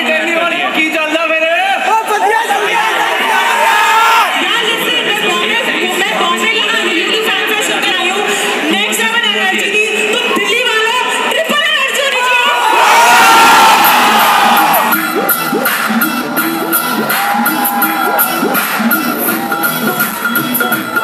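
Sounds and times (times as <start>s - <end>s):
crowd cheering and shouting: 0.0s - 6.8s, 9.9s - 21.0s
dance track with steady beat: 13.5s - 21.0s.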